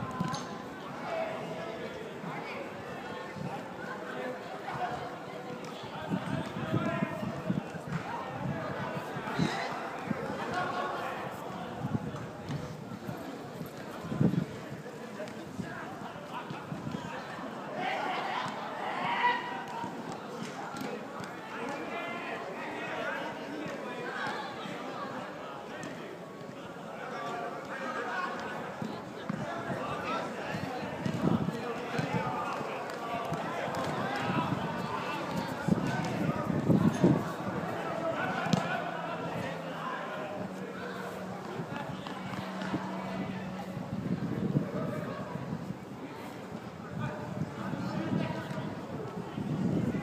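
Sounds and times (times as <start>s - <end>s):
players calling and shouting: 15.2s - 48.9s
running footsteps on artificial turf: 27.6s - 48.8s.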